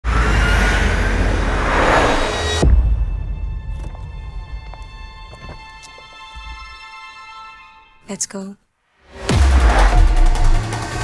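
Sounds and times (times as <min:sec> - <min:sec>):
dense rushing swell: 0:00.1 - 0:02.7
low hit: 0:01.1 - 0:04.6.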